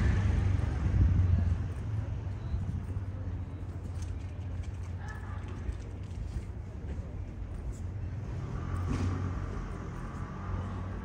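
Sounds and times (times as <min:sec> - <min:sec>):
vehicle passing: 0:00.0 - 0:02.3, 0:08.2 - 0:11.0
city street traffic rumble: 0:00.0 - 0:11.0.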